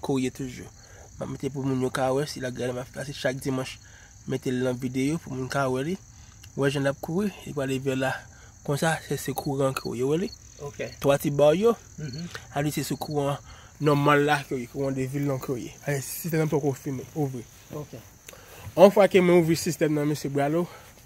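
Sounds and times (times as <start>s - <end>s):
crickets chirring: 0.0s - 21.0s
person talking: 6.5s - 20.8s.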